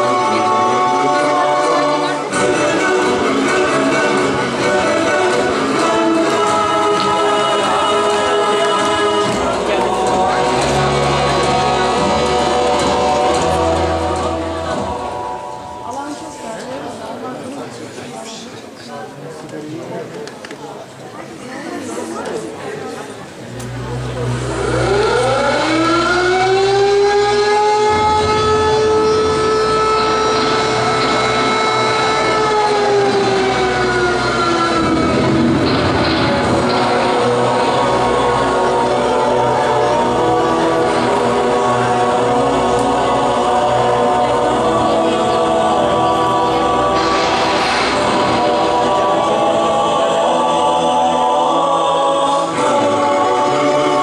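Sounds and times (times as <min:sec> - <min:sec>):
choir holding sustained chords: 0:00.0 - 0:17.7, 0:23.3 - 0:54.0
bagpipe reedy note: 0:23.8 - 0:41.1, 0:43.8 - 0:49.5.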